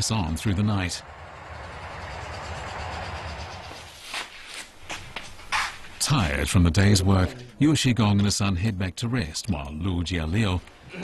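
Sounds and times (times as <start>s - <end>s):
combine harvester hum: 0.0s - 4.3s
short knocks and scuffs: 4.0s - 5.9s.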